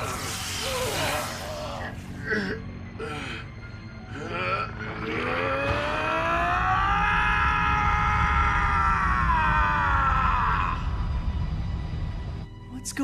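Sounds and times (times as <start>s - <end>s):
loud wailing cry: 5.0s - 10.9s
low rumble: 5.4s - 12.6s.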